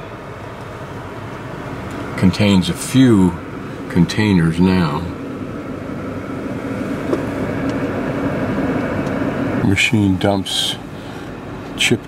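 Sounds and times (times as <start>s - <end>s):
car engine hum: 0.0s - 12.0s
road noise: 0.0s - 12.0s.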